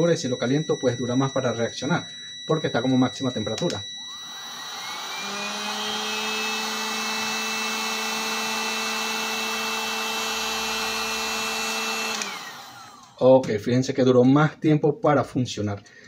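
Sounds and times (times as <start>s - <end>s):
heat gun blowing with whine: 2.1s - 13.2s.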